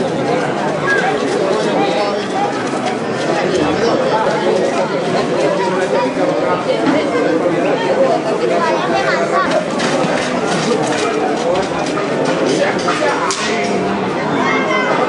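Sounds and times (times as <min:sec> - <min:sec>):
crowd chattering: 0:00.0 - 0:15.0.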